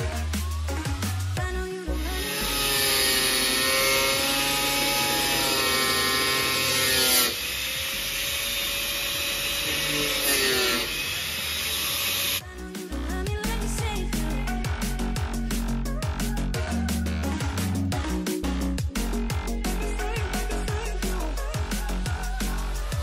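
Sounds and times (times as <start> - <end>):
electronic music with a beat: 0.0 - 2.9, 12.4 - 23.0
angle grinder cutting plastic: 1.9 - 12.4.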